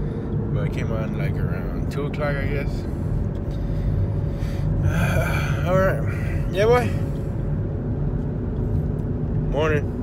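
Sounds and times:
car interior rumble: 0.0s - 10.0s.

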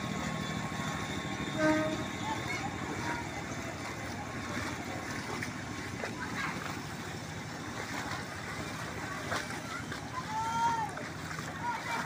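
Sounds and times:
splashing footsteps wading in water: 0.0s - 12.0s.

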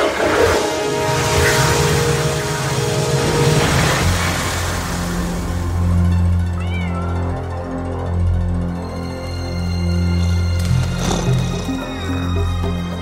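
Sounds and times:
dramatic film score music: 0.0s - 13.0s.

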